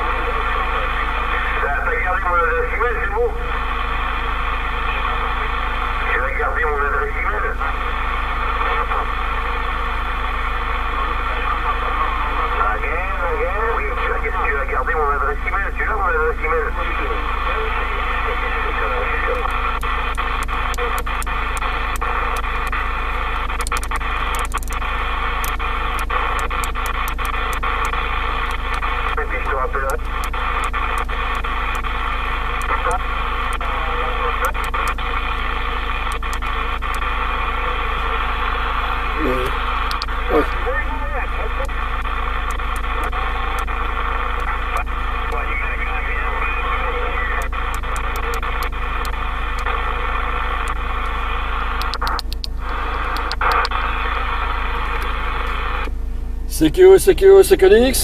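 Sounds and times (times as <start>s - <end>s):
radio receiver hiss: 0.0s - 58.0s
short clicks: 23.4s - 24.8s, 39.9s - 40.1s, 51.8s - 53.8s.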